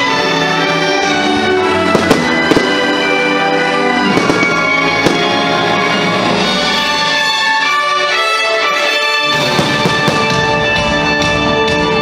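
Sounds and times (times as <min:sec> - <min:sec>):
orchestral music: 0:00.0 - 0:12.0
fireworks bangs: 0:01.8 - 0:06.4, 0:09.4 - 0:10.8.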